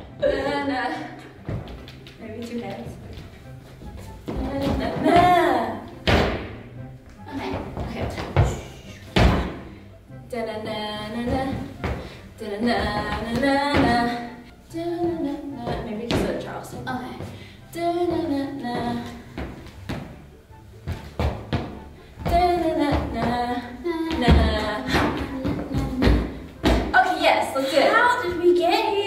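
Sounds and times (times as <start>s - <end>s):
feet thudding on wooden floor: 1.4s - 2.1s, 2.8s - 9.8s, 11.2s - 12.2s, 20.8s - 23.4s, 24.1s - 27.0s
woman singing wordless melody: 4.3s - 6.0s, 10.2s - 19.4s, 22.2s - 29.0s.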